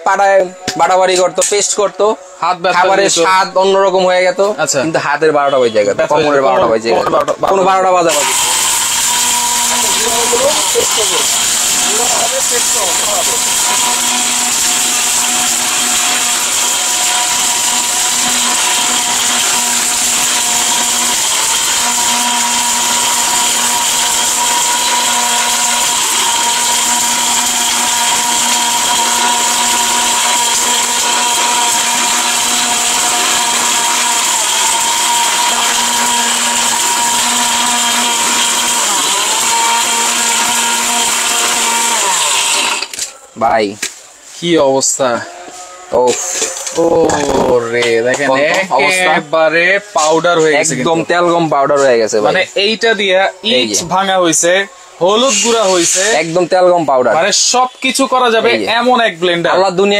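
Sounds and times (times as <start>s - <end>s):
mixer grinder motor whining: 0.1s - 43.1s, 45.1s - 59.9s.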